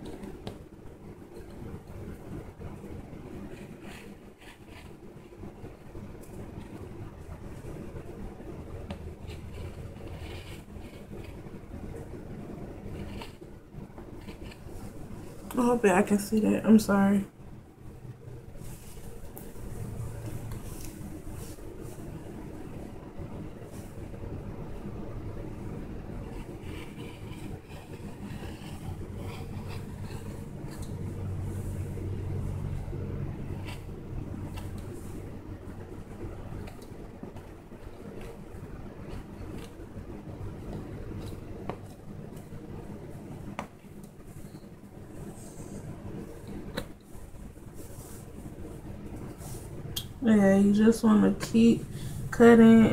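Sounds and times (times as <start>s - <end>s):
steady low hum: 0.0s - 52.9s.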